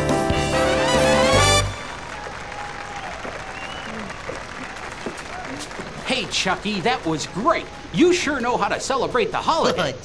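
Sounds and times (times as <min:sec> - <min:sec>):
show song with brass: 0:00.0 - 0:02.0
applause: 0:01.3 - 0:07.5.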